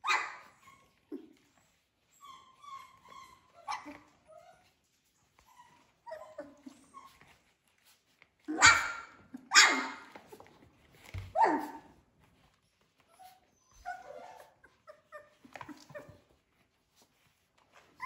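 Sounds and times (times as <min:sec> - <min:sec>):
puppies whimpering and yipping: 0:00.0 - 0:18.0
puppies barking: 0:08.5 - 0:10.2.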